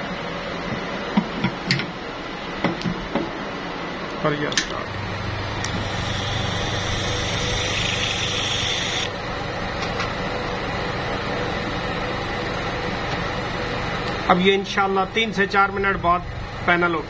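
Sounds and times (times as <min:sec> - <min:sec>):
quiet steady machine noise: 0:00.0 - 0:17.0
low motor hum: 0:04.7 - 0:17.0
air hissing into chamber: 0:05.5 - 0:09.1.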